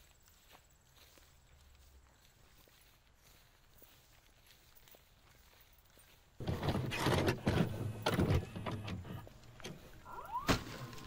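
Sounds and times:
soft footsteps: 0.0s - 11.0s.

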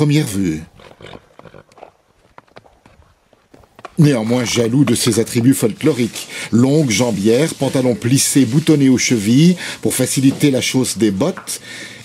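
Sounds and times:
hooves shifting on hard floor: 1.7s - 11.7s.

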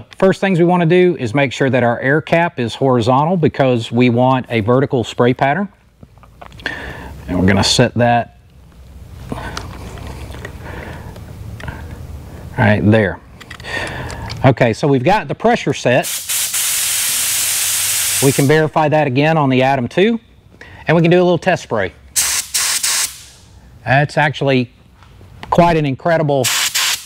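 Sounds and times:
compressed air hissing through spray gun: 16.0s - 18.6s, 22.2s - 23.4s, 26.4s - 27.0s.

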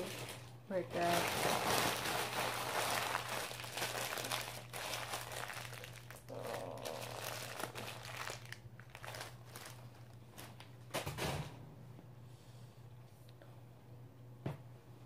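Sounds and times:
wrapping crinkling in hand: 0.0s - 10.7s.

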